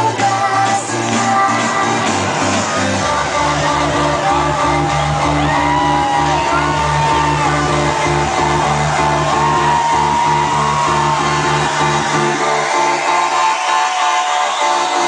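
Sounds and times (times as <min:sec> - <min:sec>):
house music with pulsing bass: 0:00.0 - 0:15.0.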